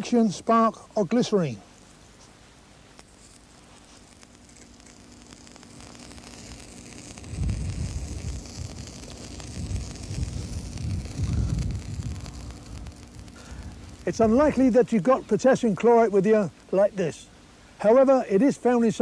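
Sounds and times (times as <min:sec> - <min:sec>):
mixture burning with rushing: 0:00.1 - 0:19.0
hissing chemical mixture: 0:02.8 - 0:16.7.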